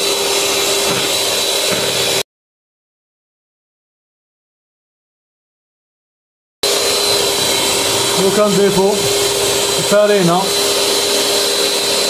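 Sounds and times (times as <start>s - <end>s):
electric hand mixer whirring: 0.0s - 2.2s, 6.6s - 12.0s.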